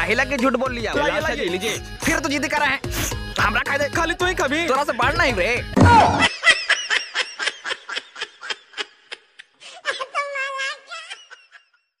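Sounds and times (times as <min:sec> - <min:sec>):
person laughing: 0:05.9 - 0:11.8.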